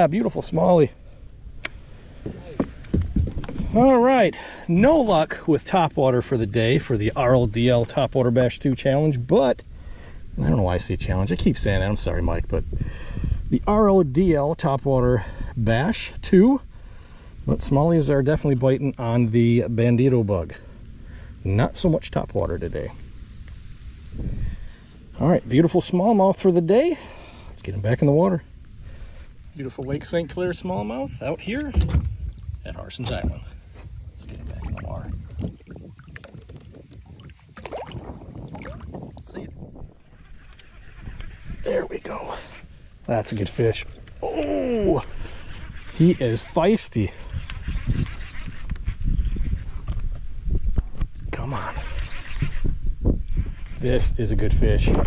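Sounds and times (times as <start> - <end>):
wind buffeting microphone: 0.0 - 8.0, 9.7 - 55.0.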